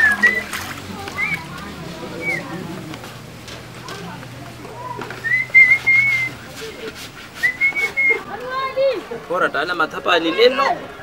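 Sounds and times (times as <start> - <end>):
voice: 0.0 - 3.1
person whistling: 5.2 - 6.4, 7.4 - 8.2.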